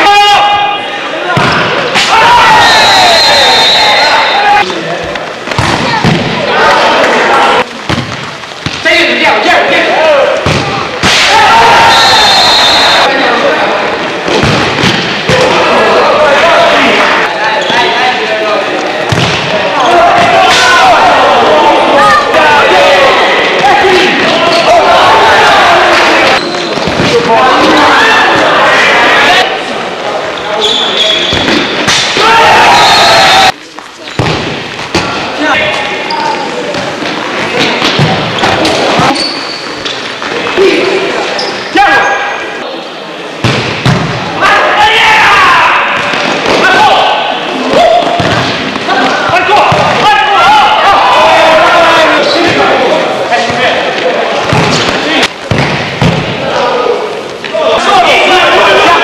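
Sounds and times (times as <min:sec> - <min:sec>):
people shouting: 0:00.0 - 0:04.7, 0:05.6 - 0:07.7, 0:08.9 - 0:14.6, 0:15.2 - 0:18.0, 0:19.5 - 0:29.5, 0:30.5 - 0:33.6, 0:44.3 - 0:55.3, 0:56.0 - 0:59.0
players and spectators calling out: 0:00.0 - 0:07.9, 0:08.8 - 0:43.5, 0:44.1 - 0:59.0
ball kicked and bouncing on court: 0:07.8 - 0:08.8, 0:18.9 - 0:20.4, 0:48.0 - 0:50.0, 0:54.4 - 0:56.4
ball kicked on hard court: 0:07.9 - 0:08.8.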